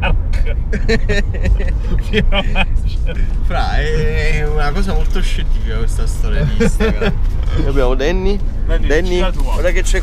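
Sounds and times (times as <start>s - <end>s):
men laughing and talking: 0.0s - 8.0s
car engine and road rumble: 0.0s - 10.0s.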